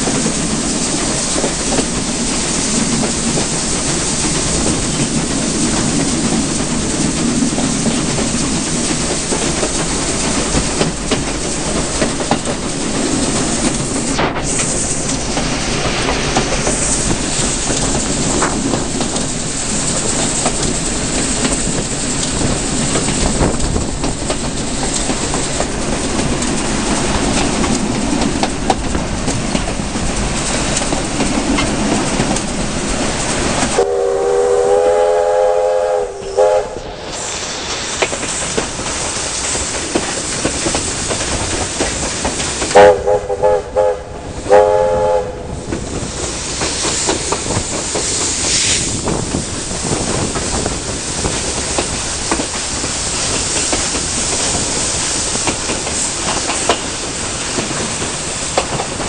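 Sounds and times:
train rumble and wheel clatter: 0:00.0 - 0:59.0
steam whistle blasts: 0:33.8 - 0:37.1, 0:42.7 - 0:45.5.

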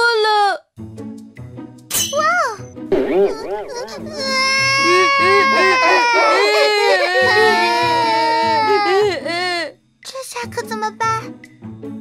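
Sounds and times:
cartoon children wailing and sobbing: 0:03.3 - 0:09.7.

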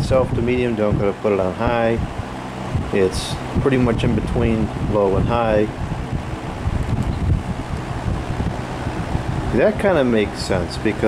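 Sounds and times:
air buffeting microphone: 0:00.0 - 0:11.0
box fan running: 0:00.0 - 0:11.0.

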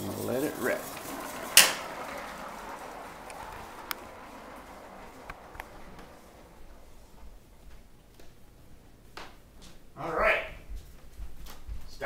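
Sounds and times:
toy car rolling rattle: 0:00.0 - 0:07.5.

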